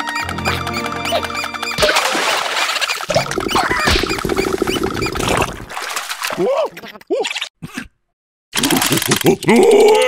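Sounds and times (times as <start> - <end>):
water sloshing and trickling: 1.8 - 6.4.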